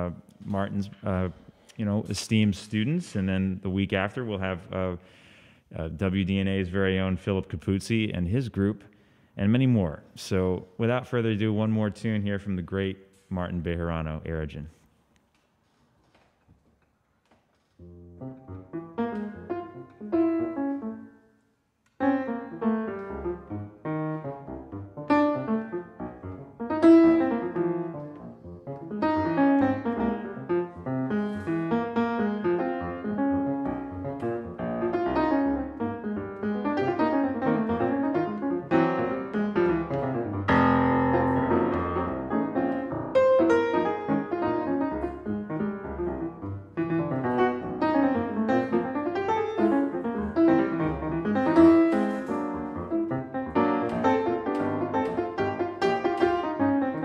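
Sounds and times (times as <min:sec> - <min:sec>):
jazz piano: 0:17.8 - 0:57.0.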